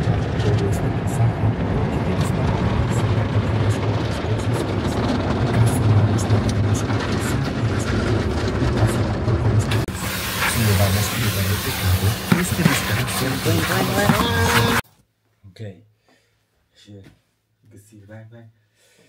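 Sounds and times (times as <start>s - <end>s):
car wash spraying and scrubbing: 0.0s - 14.8s
low hum: 0.0s - 14.8s.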